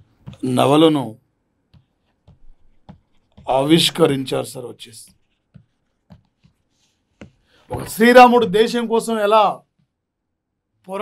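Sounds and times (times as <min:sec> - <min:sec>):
pen writing: 0:05.1 - 0:08.1.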